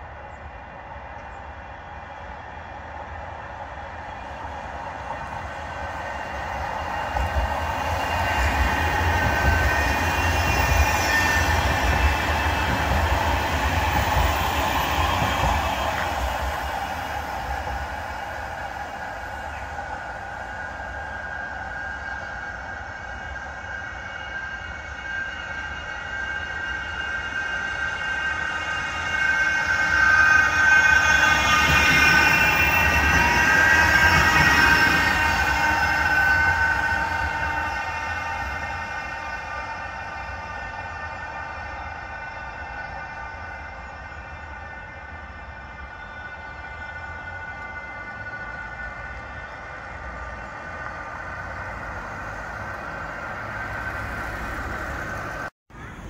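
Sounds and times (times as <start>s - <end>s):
tram electric whine: 0.0s - 56.0s
tram wheels rumbling on rail: 0.0s - 56.0s.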